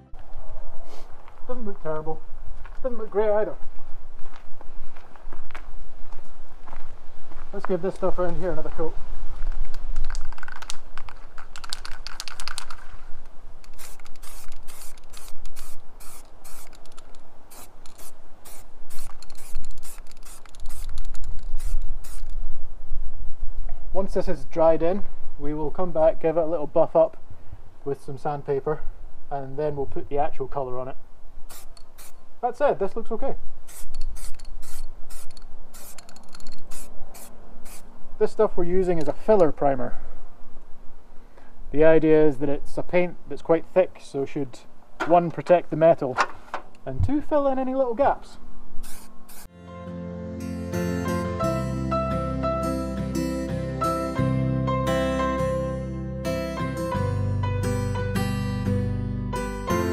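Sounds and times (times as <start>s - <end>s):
spray can rattling: 10.0s - 12.8s, 13.6s - 22.4s, 31.5s - 32.2s, 33.7s - 37.8s
spray can hissing bursts: 13.7s - 22.4s, 31.5s - 32.2s, 33.7s - 37.9s, 48.8s - 49.5s.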